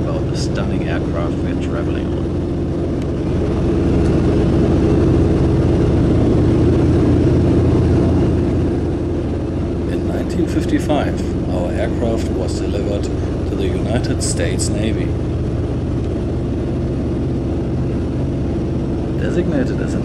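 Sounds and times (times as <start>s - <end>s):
propeller plane engine drone: 0.0s - 20.0s.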